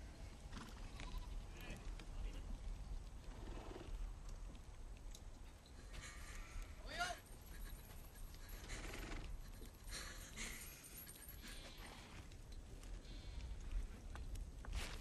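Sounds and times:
faint livestock sounds: 0.0s - 4.4s, 10.6s - 14.3s.

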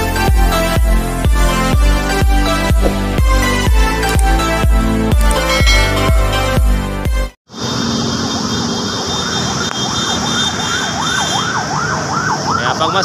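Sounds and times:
emergency siren wailing: 10.3s - 13.0s.

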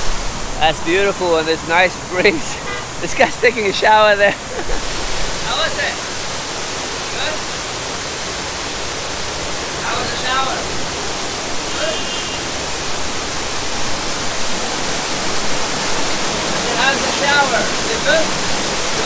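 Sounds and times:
water falling down stone wall: 0.0s - 19.0s.

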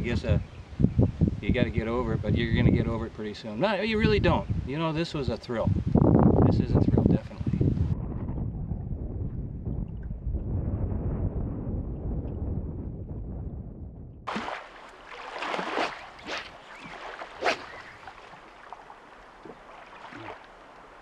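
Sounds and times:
gusty wind swishes: 0.0s - 3.2s, 3.9s - 14.4s
wind rumble on microphone: 0.0s - 14.3s.

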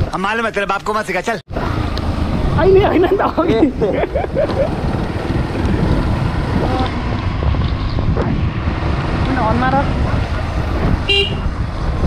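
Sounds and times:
motorcycle running: 1.5s - 12.0s
wind buffeting microphone: 2.2s - 12.0s.

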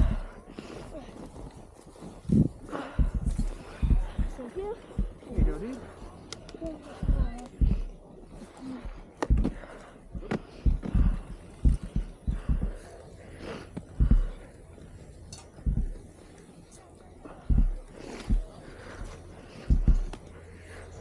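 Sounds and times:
breathy vocal sounds: 0.0s - 1.2s, 2.1s - 15.0s
low thumps and rustling: 8.7s - 12.9s.

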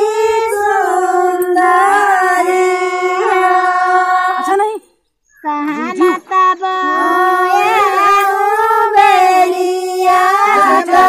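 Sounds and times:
high voices singing unaccompanied: 0.0s - 11.0s.

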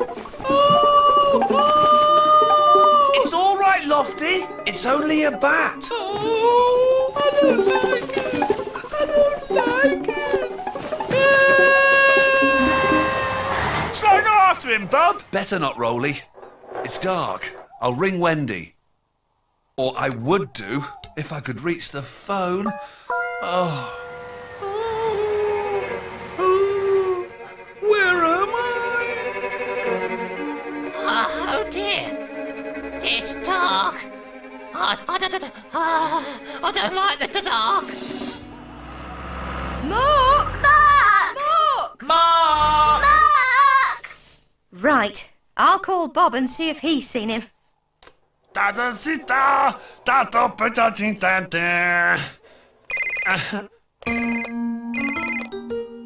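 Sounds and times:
telephone ringing: 0.0s - 3.8s, 52.9s - 53.4s, 54.1s - 55.7s
drawn-out wavering cries: 0.0s - 14.0s, 23.7s - 36.6s, 38.3s - 41.5s
background music: 0.0s - 14.2s, 22.6s - 41.2s, 54.1s - 56.0s.

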